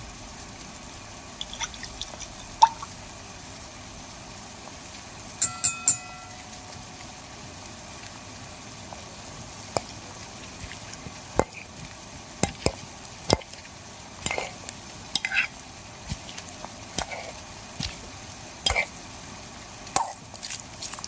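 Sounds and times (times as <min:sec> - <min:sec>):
food sizzling in a pan: 0:00.0 - 0:21.0
utensil knocking against pan: 0:05.4 - 0:06.5.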